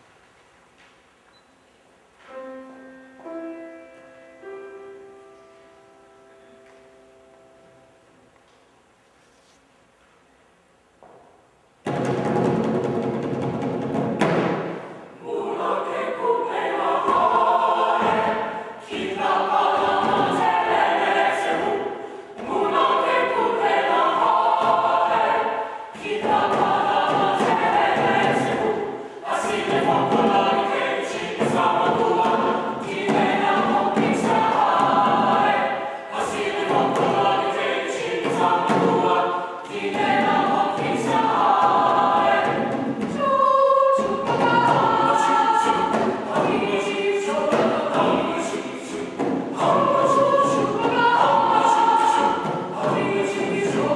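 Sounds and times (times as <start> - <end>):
mixed choir singing: 14.4 - 53.9.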